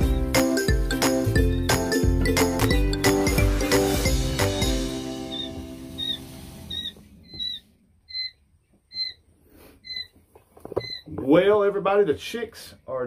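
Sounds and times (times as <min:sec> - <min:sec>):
background music: 0:00.0 - 0:06.8
quail chicks peeping: 0:05.3 - 0:11.3.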